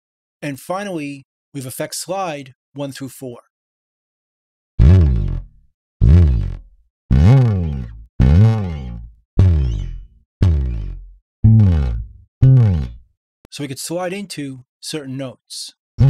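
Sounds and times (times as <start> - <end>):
electric bass string slides: 4.8 - 13.0.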